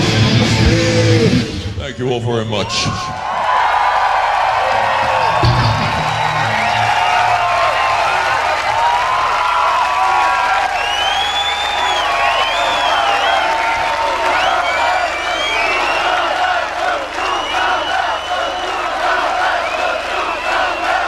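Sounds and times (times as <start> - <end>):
crowd cheering and screaming: 2.6 - 21.0
low thump: 5.1 - 7.6
shrill whistles: 10.4 - 21.0.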